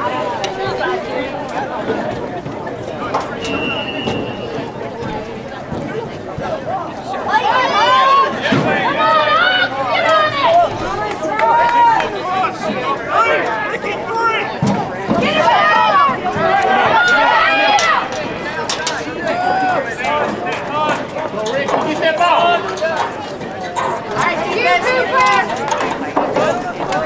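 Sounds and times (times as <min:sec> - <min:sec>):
people talking and calling out: 0:00.0 - 0:27.0.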